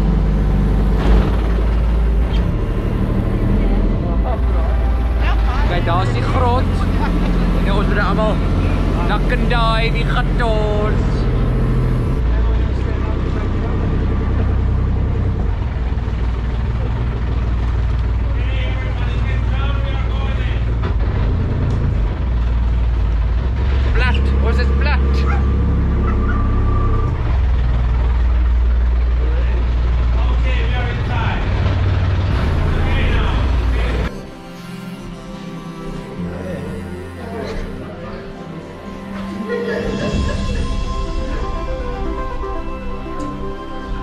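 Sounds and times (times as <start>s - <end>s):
boat motor running: 0.0s - 44.0s.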